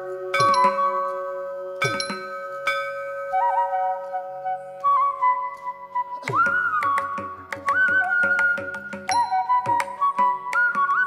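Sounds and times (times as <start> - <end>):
ringing metallic strikes: 0.4 - 1.0, 1.8 - 3.4.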